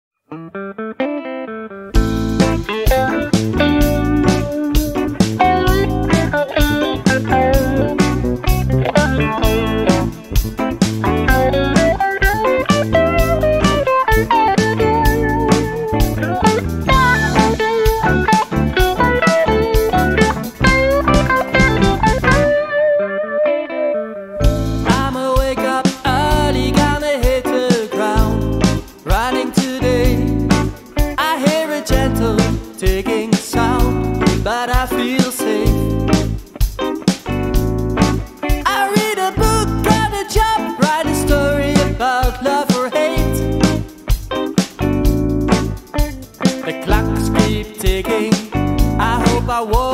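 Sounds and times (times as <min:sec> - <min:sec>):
guitar-led blues-rock band: 0:00.3 - 0:49.9.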